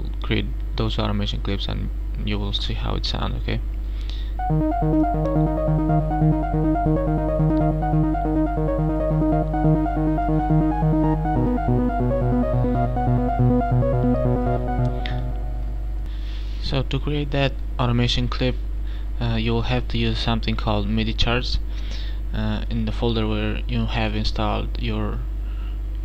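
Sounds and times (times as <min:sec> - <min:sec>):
steady low hum: 0:03.9 - 0:16.4
stepped synth melody: 0:04.4 - 0:16.1
synth bass line: 0:04.4 - 0:16.1.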